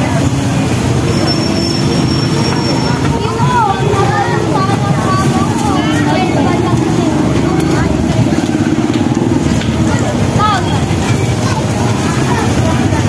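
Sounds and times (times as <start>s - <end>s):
loud low rumble: 0.0s - 13.0s
people talking: 0.0s - 13.0s.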